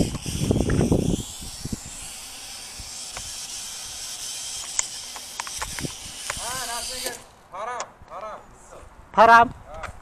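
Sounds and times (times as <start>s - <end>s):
drone propellers whirring: 0.0s - 7.4s
sharp clicks: 3.0s - 3.4s, 4.5s - 7.9s.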